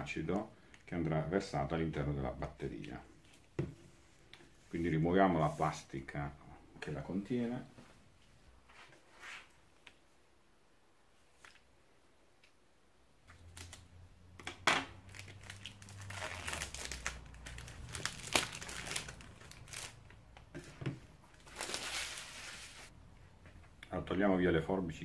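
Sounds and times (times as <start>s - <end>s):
plastic bag crinkling: 14.9s - 20.7s, 21.3s - 22.9s.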